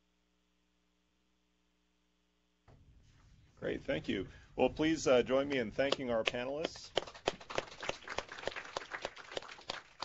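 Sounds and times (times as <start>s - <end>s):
small group clapping: 5.5s - 10.0s.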